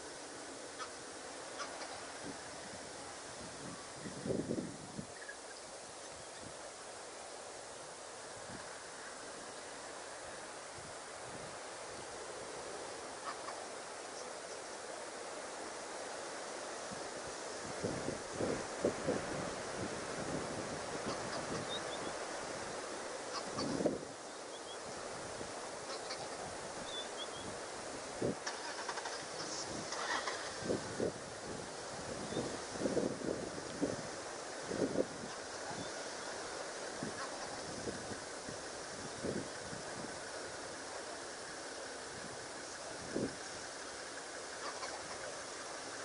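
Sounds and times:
wind: 0.0 - 46.0
wind noise on microphone: 1.6 - 5.4, 10.6 - 12.8, 16.7 - 24.2, 24.8 - 43.8.

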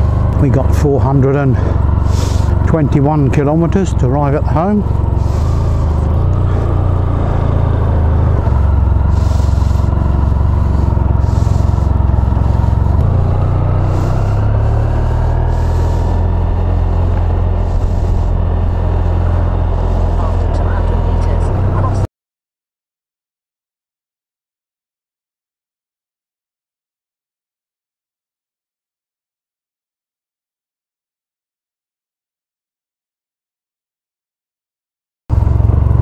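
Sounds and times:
motorcycle engine running: 0.0 - 22.1, 35.3 - 36.0.

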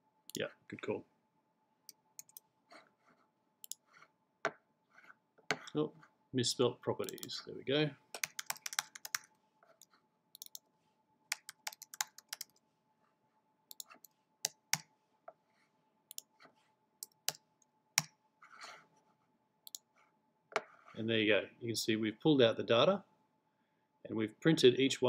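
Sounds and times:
computer keyboard typing: 2.2 - 2.4, 7.0 - 7.4, 8.1 - 9.3, 10.4 - 10.6, 11.3 - 12.6, 13.7 - 14.8, 17.0 - 17.4.

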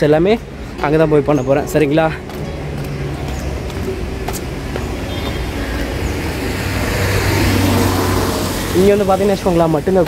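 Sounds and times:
traffic on a wet street: 0.0 - 10.0.

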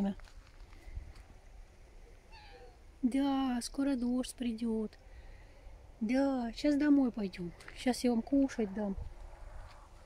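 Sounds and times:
cat meowing: 2.3 - 2.8.

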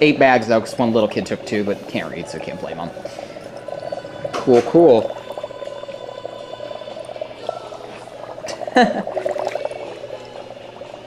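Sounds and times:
dry ice bubbling in water: 0.0 - 11.0.

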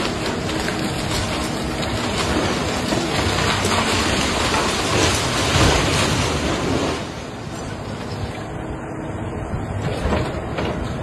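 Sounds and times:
splintering timber and falling debris: 0.0 - 7.3
excavator engine: 0.0 - 11.0.

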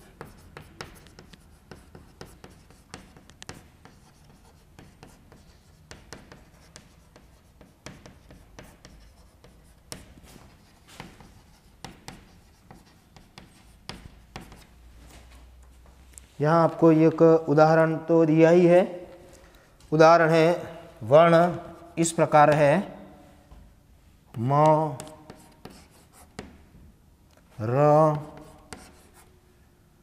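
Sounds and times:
chalk tapping and scratching: 0.0 - 14.8, 24.3 - 26.6, 27.8 - 29.4.

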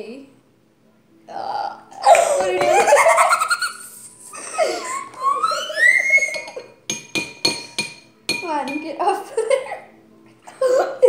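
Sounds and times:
girls giggling and laughing: 2.0 - 6.8, 9.3 - 11.0.

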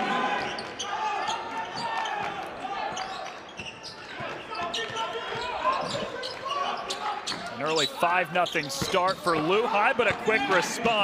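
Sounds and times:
crowd chatter and calls: 0.0 - 11.0.

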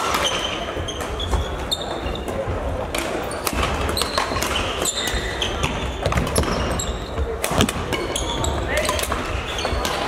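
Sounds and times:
voices in a hall: 0.0 - 10.0
shoes squeaking on court: 0.1 - 2.5, 3.2 - 10.0.

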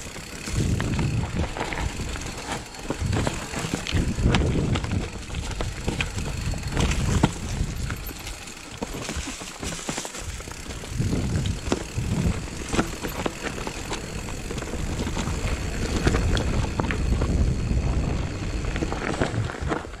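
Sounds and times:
wind buffeting microphone: 0.0 - 8.9, 10.3 - 20.0
bike rattling clicks: 0.0 - 20.0
bike tyres rolling over dirt: 0.0 - 20.0.

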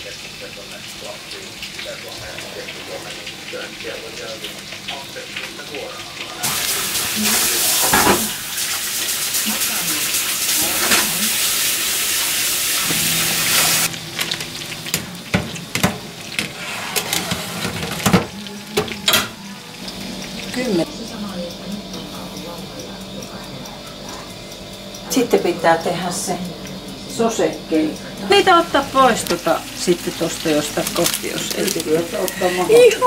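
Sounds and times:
kitchen utensils knocking: 7.7 - 8.4, 14.9 - 19.5
tap running into sink: 7.7 - 8.4, 12.8 - 19.3.

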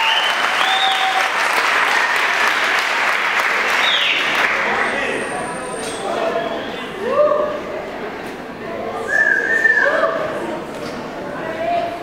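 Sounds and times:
audience murmur: 1.2 - 12.0
person whistling high note: 9.1 - 10.0.

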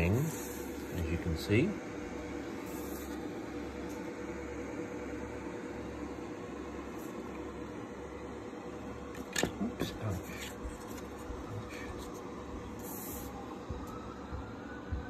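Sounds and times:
appliance hum: 0.0 - 15.0
handling rustles and clicks: 9.2 - 11.4.

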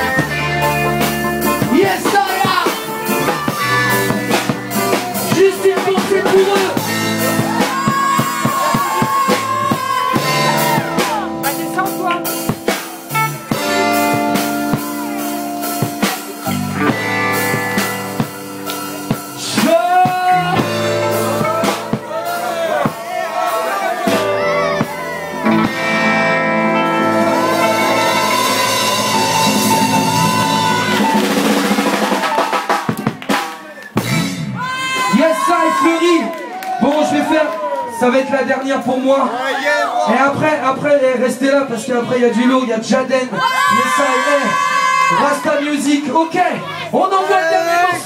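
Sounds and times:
drums keeping steady beat: 0.0 - 35.8
live band music: 0.0 - 36.2
electric guitar bending note: 24.2 - 31.0.

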